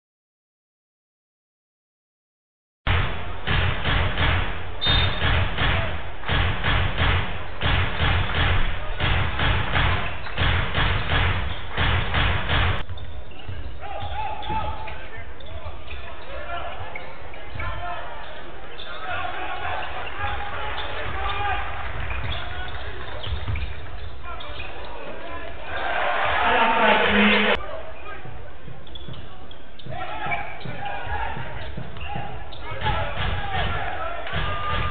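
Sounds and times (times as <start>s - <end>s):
basketball bouncing on court: 2.9s - 15.0s, 20.7s - 24.1s, 28.2s - 34.9s
sneakers squeaking: 4.6s - 5.9s, 7.0s - 34.9s
voices in a hall: 12.8s - 34.9s.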